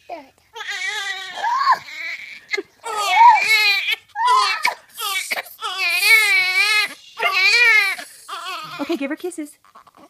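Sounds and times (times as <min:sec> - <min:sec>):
newborn baby crying: 0:00.5 - 0:10.0.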